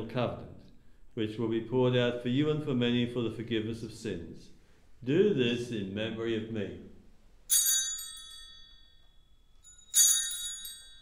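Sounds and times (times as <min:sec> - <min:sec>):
altar bells jangling: 0:07.5 - 0:11.0.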